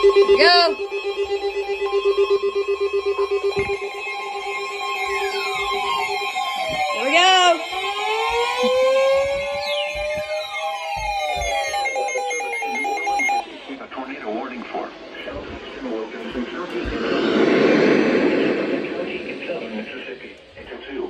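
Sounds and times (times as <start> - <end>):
gliding siren-like tones: 0.0 - 13.6, 14.8 - 20.6
weather radio alert tones: 6.9 - 13.8.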